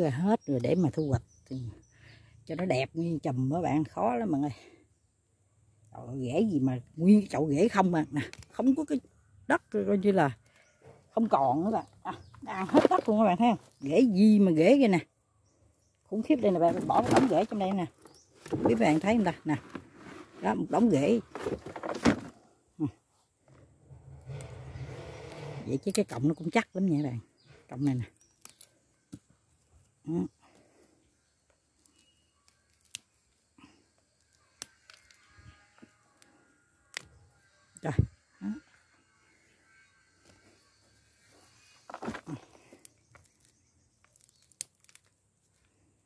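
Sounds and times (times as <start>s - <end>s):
roots crackling and tearing: 10.4s - 14.5s, 16.1s - 22.4s, 23.8s - 30.8s, 31.7s - 38.1s, 41.2s - 45.8s
plastic pot scraping: 11.2s - 14.0s, 16.2s - 22.5s, 23.4s - 26.5s, 41.3s - 43.4s
root snapping: 28.4s - 29.2s, 32.7s - 33.1s, 43.1s - 45.1s.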